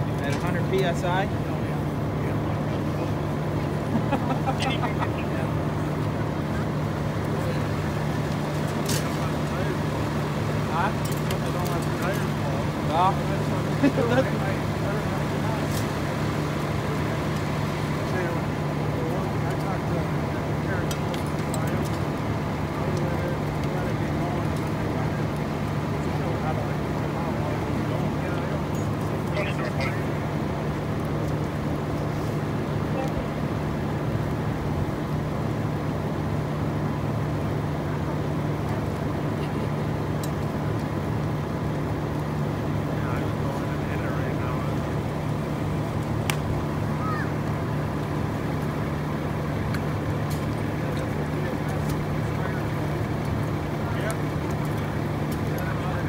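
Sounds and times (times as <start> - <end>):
fire popping and crackling: 0.0 - 56.0
fire roaring: 0.0 - 56.0
low engine hum: 0.0 - 56.0.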